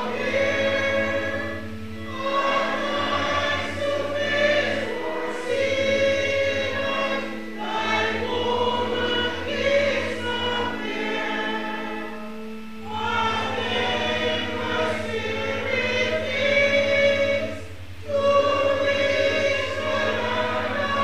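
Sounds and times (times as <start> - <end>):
congregation singing a hymn: 0.0 - 21.0
low accompanying tone: 0.0 - 21.0.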